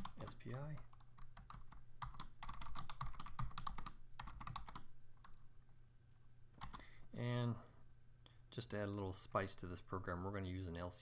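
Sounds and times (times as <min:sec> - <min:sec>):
typing on computer keyboard: 0:00.0 - 0:05.4, 0:06.6 - 0:06.8.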